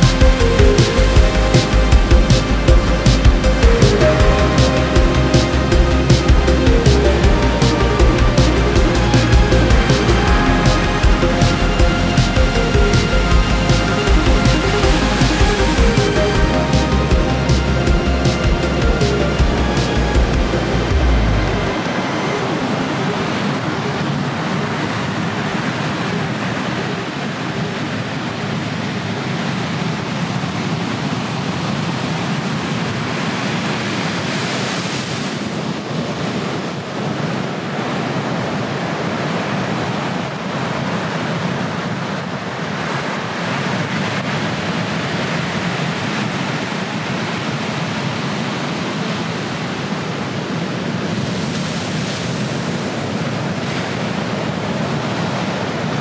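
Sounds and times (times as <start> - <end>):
ocean waves breaking: 0.0 - 56.0.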